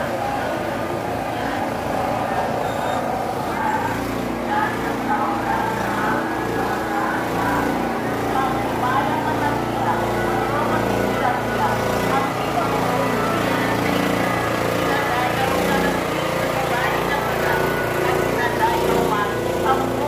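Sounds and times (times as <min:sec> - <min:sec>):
crowd voices: 0:00.0 - 0:20.0
small engine running: 0:00.0 - 0:20.0.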